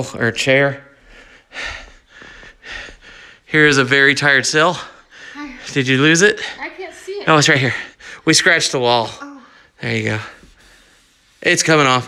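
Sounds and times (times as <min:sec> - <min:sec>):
person breathing: 0:00.9 - 0:03.5, 0:04.7 - 0:06.7, 0:07.7 - 0:08.3, 0:09.2 - 0:11.4.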